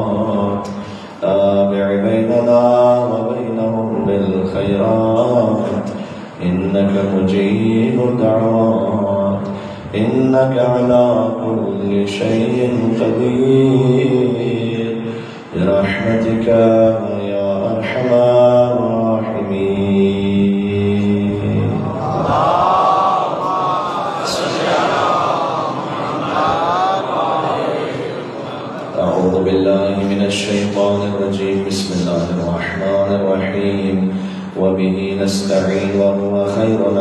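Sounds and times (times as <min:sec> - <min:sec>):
man chanting through microphone: 0:00.0 - 0:37.0.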